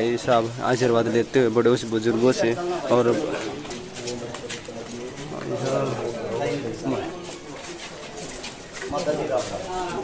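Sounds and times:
men talking in background: 0.0s - 10.0s.

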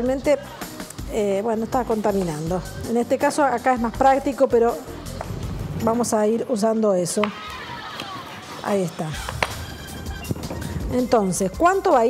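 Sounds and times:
quiet background music: 0.0s - 12.0s.

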